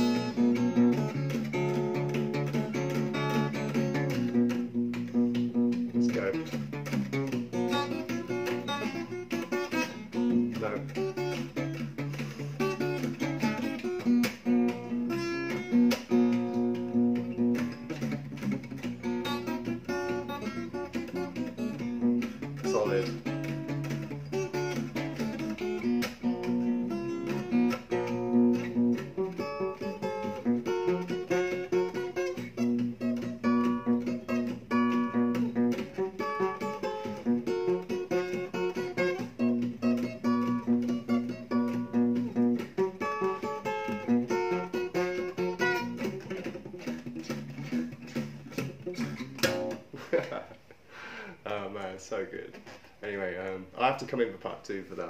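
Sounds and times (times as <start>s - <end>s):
fingerstyle acoustic guitar: 0.0s - 50.5s.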